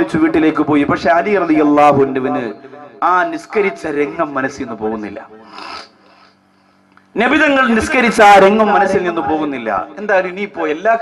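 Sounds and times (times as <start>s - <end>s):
man speaking: 0.0s - 5.4s, 7.2s - 11.0s.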